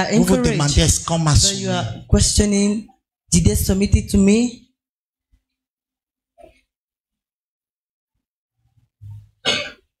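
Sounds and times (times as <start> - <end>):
man clearing throat: 9.4 - 10.0
man coughing into microphone: 9.4 - 10.0.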